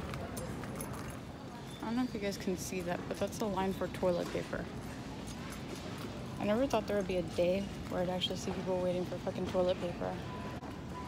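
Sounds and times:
store background noise: 0.0 - 11.0
woman's voice: 6.4 - 10.3.

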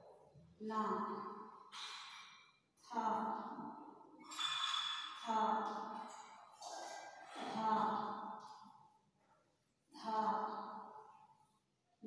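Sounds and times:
woman saying a syllable: 0.6 - 1.1, 7.5 - 8.0, 10.0 - 10.6.

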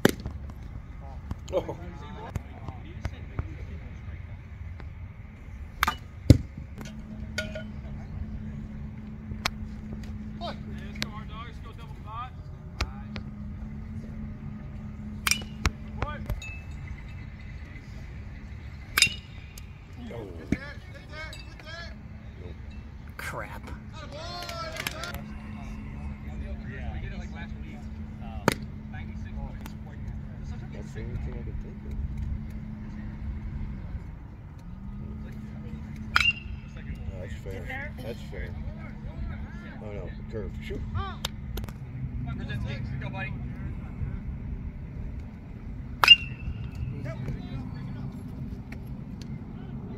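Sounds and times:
baseball bat hitting ball: 0.0 - 0.6, 5.8 - 8.0, 15.1 - 16.6, 18.9 - 19.7, 28.4 - 28.8, 36.0 - 36.9, 46.0 - 46.8
steady low hum: 0.0 - 49.9
faint distant voices: 0.7 - 45.8.

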